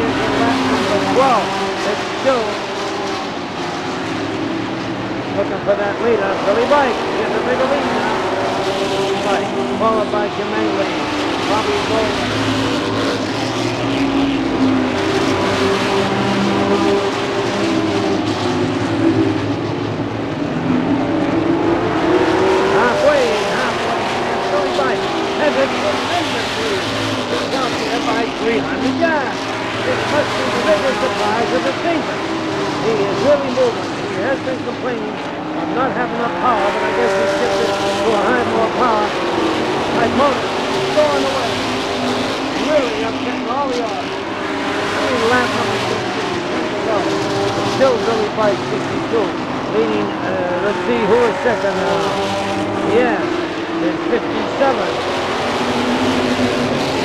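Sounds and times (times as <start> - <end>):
race car engines running hard: 0.0 - 57.0.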